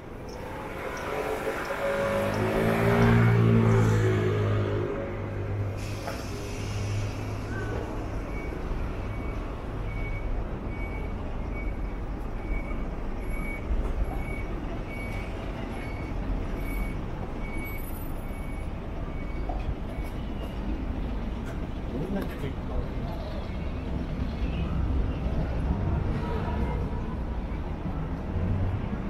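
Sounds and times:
heavy vehicle engine running: 0:00.0 - 0:29.0
street traffic: 0:00.0 - 0:29.0.

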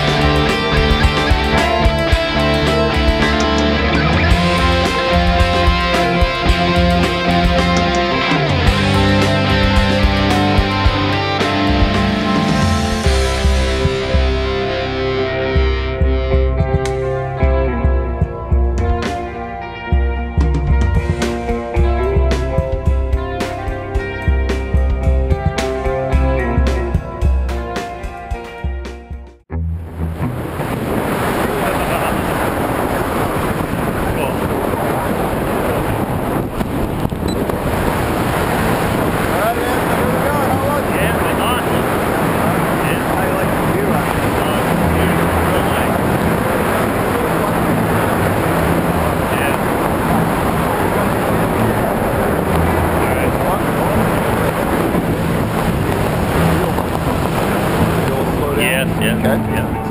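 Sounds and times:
wind rushing over microphone: 0:00.0 - 0:14.7, 0:29.8 - 0:59.9.

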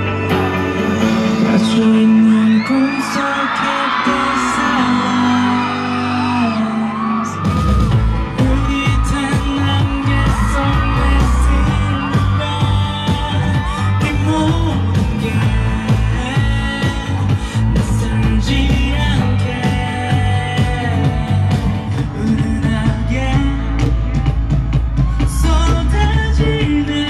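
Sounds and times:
drums and bass: 0:00.0 - 0:02.7, 0:07.2 - 0:27.0
man singing with band: 0:00.0 - 0:24.5, 0:25.1 - 0:27.0.

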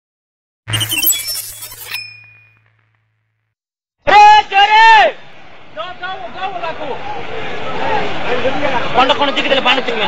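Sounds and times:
bright ringing ding: 0:00.7 - 0:02.9.

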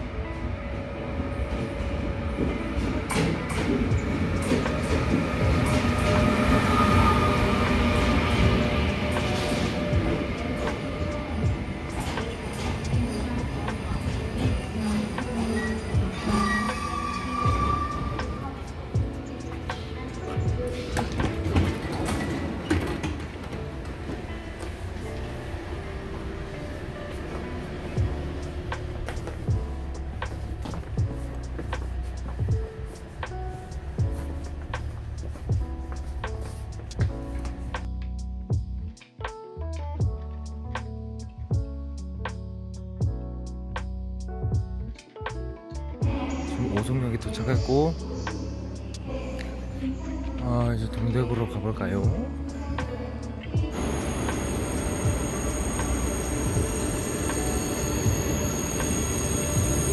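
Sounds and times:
passenger train rolling past: 0:00.0 - 0:37.9, 0:53.6 - 0:59.9
background music: 0:00.0 - 0:59.9.

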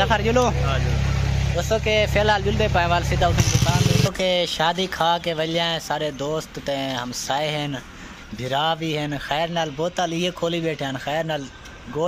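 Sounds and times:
men talking: 0:00.0 - 0:12.0.

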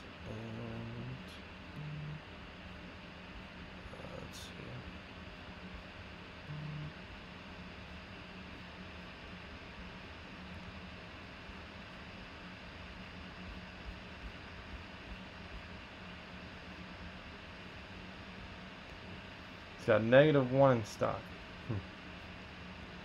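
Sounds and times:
faint low hum: 0:00.0 - 0:08.8
steady low hiss: 0:18.6 - 0:21.8.

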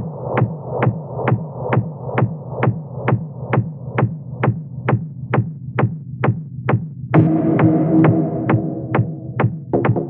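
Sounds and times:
steady kick drum: 0:00.0 - 0:10.0
sustained synth chord: 0:07.2 - 0:09.4
electronic dance music: 0:07.2 - 0:10.0.

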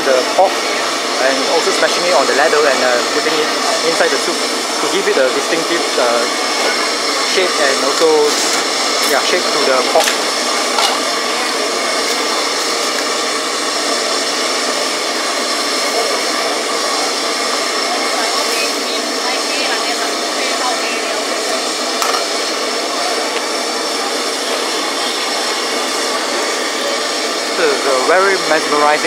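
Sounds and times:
gas burner rushing: 0:00.0 - 0:29.0.

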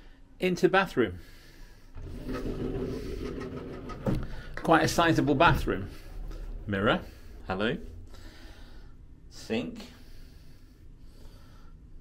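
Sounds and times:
sliding door rolling open: 0:01.9 - 0:08.8.

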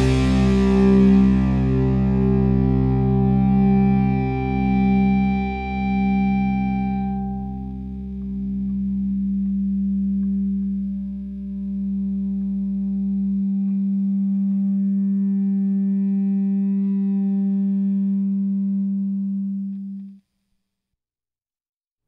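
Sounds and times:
distorted electric guitar drone: 0:00.0 - 0:20.1
low bass note: 0:00.0 - 0:20.1.

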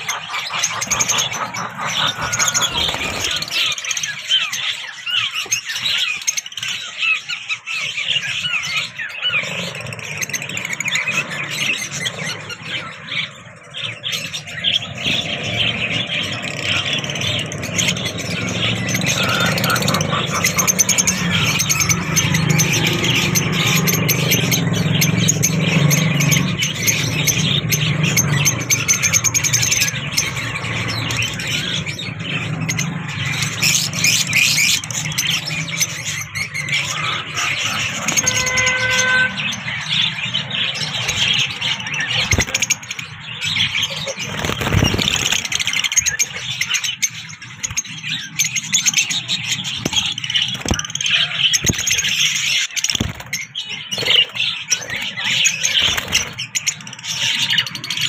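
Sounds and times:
lovebirds chattering: 0:00.0 - 0:58.0.

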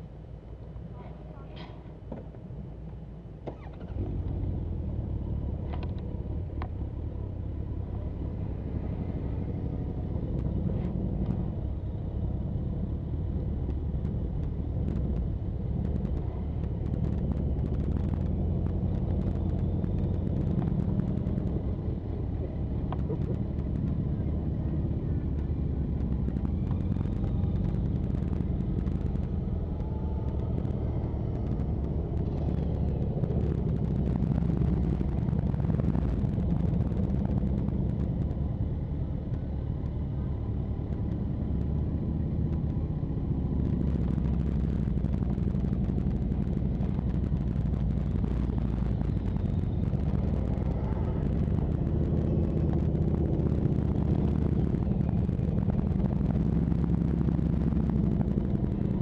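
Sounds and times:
wind rumble on microphone: 0:00.0 - 0:59.0.

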